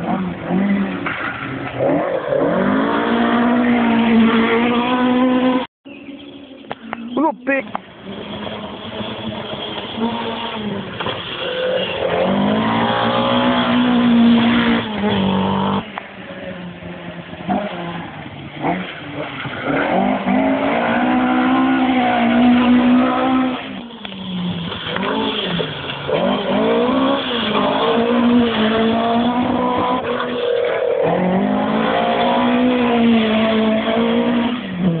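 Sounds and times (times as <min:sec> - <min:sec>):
rally car engine revving: 0:00.0 - 0:05.7, 0:07.0 - 0:16.0, 0:17.0 - 0:35.0.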